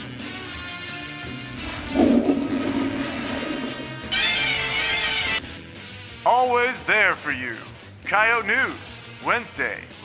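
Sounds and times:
background music: 0:00.0 - 0:10.0
toilet flushing: 0:01.6 - 0:04.6.

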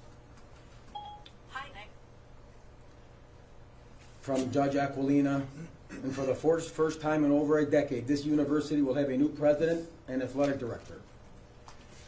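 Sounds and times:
low room hum: 0:00.0 - 0:12.0
electronic beep: 0:01.0 - 0:01.3.

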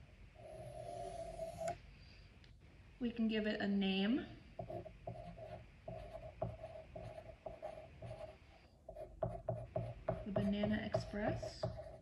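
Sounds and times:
pencil stroke on paper: 0:04.6 - 0:12.0
pencil tap: 0:08.9 - 0:12.0.

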